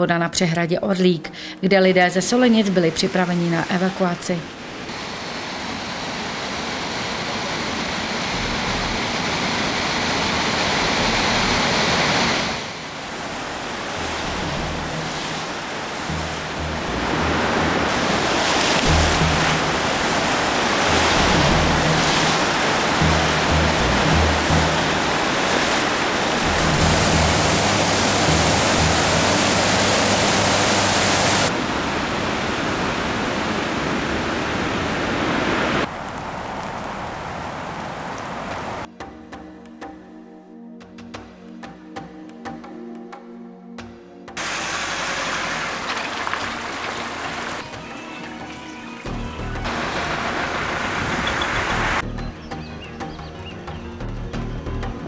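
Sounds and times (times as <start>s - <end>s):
floodwater roaring through gates: 2.3s - 38.9s, 44.4s - 52.0s.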